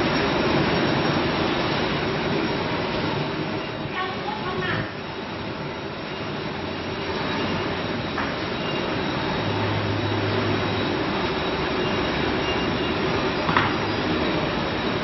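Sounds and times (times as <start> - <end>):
machinery running steadily: 0.0 - 15.0.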